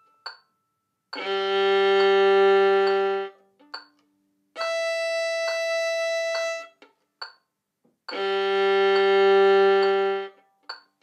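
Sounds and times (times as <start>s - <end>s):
metronome ticking: 0.0s - 11.0s
violin bowed notes: 1.2s - 3.8s, 4.5s - 7.0s, 8.1s - 10.5s.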